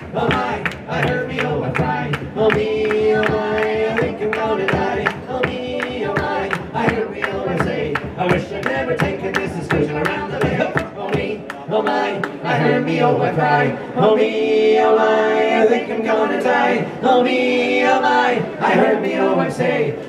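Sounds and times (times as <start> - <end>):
bodhran drum beating: 0.1 - 11.4
hand claps: 0.2 - 12.4.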